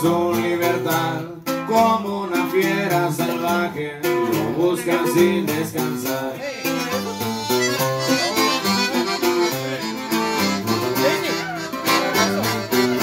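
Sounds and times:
person singing: 0.0 - 13.0
strummed acoustic guitar: 0.0 - 13.0
accordion melody: 4.1 - 13.0.

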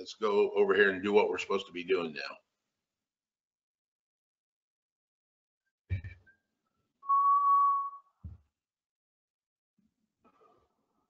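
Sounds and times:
electronic beep: 7.1 - 8.0.

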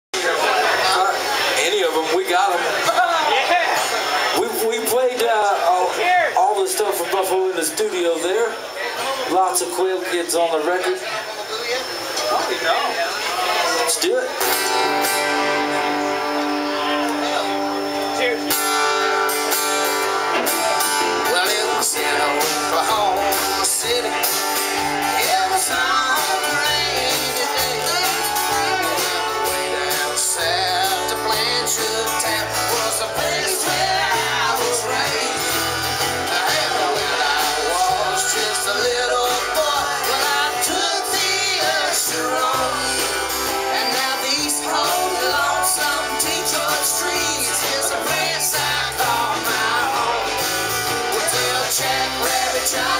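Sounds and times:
strummed acoustic guitar: 12.1 - 52.9
electric guitar: 13.2 - 52.9
drum kit: 18.6 - 52.9
man singing: 20.7 - 52.9.

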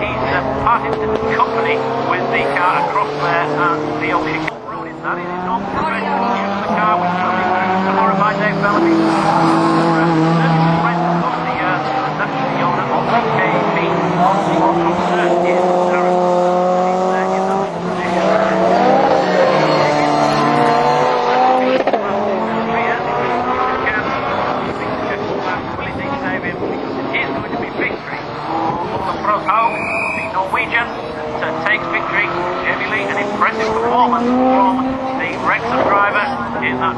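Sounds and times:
racing car engines revving: 0.0 - 36.9
tyre squeal: 29.6 - 30.4.

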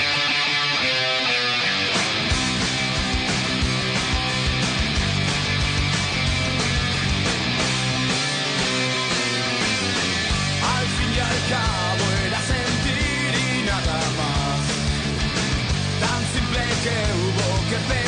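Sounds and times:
drums: 0.0 - 18.0
electric guitars playing: 0.0 - 18.0.

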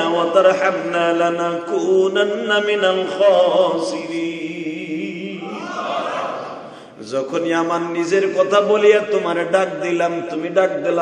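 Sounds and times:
man chanting through microphones: 0.0 - 5.5, 7.0 - 11.0.

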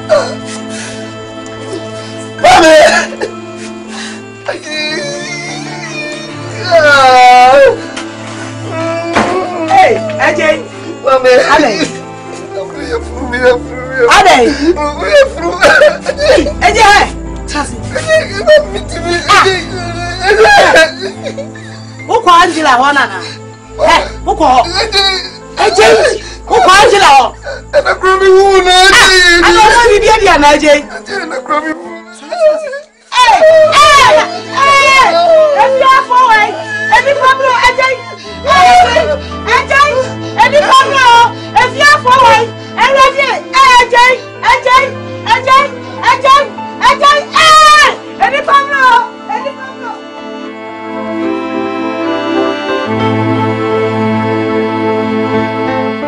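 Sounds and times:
background music: 0.0 - 56.0
man moaning in pain: 2.4 - 3.4, 17.8 - 21.5, 23.8 - 26.6
woman crying out for help: 14.1 - 17.2, 17.8 - 21.8, 23.8 - 31.2, 31.9 - 50.1.

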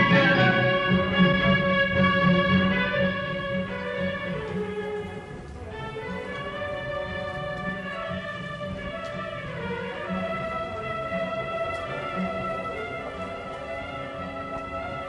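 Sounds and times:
orchestral music: 0.0 - 15.0.

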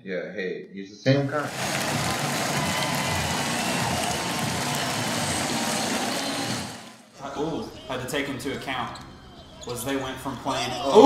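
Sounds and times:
loud rushing noise: 1.4 - 7.1.

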